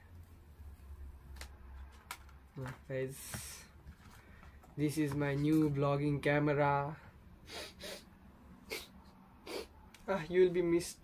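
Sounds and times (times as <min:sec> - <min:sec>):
person sniffing through nose: 0:07.4 - 0:09.8.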